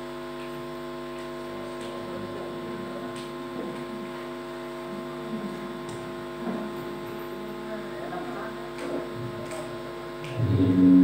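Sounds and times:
sound system electrical hum: 0:00.0 - 0:11.0.

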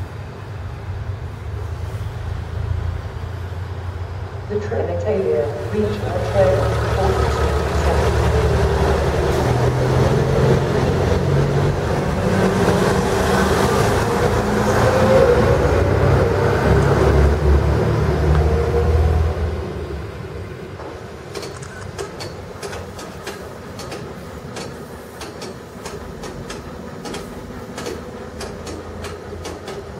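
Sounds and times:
diesel railcar engine: 0:00.0 - 0:29.9
light clicks of railcar: 0:07.8 - 0:12.0, 0:18.2 - 0:18.5, 0:20.7 - 0:29.9.

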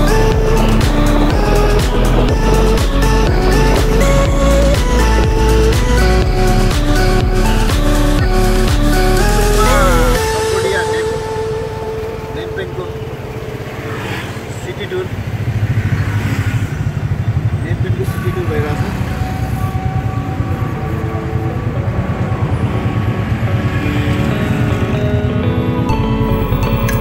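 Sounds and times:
motorcycle engine running: 0:00.0 - 0:10.2
passing vehicles: 0:00.0 - 0:27.0
road noise: 0:00.0 - 0:27.0.

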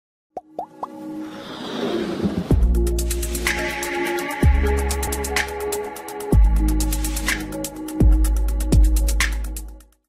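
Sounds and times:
synth music: 0:00.4 - 0:09.8
whoosh: 0:01.2 - 0:02.8.

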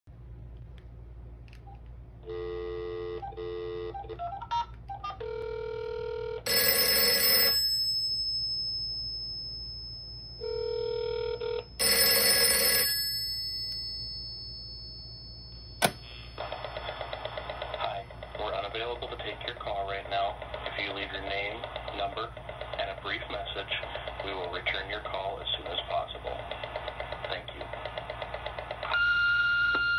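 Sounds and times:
telephone bell ringing: 0:02.2 - 0:04.3, 0:05.2 - 0:18.2
electronic dialing tones: 0:02.2 - 0:07.7, 0:10.4 - 0:13.2
taped greeting playing: 0:11.8 - 0:29.9
answering machine click: 0:15.8 - 0:16.1.

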